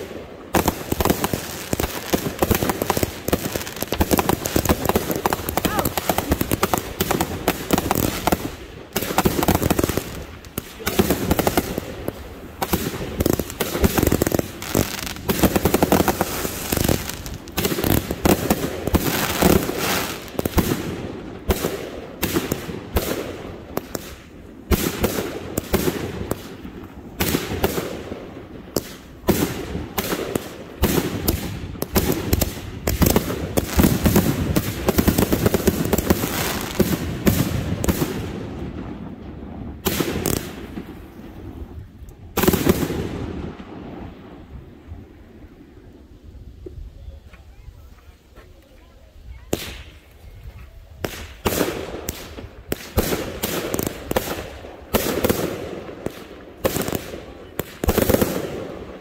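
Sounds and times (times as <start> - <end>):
fireworks shots and bursts: 0.0 - 47.0, 49.2 - 59.0
crackling fireworks stars: 0.0 - 59.0.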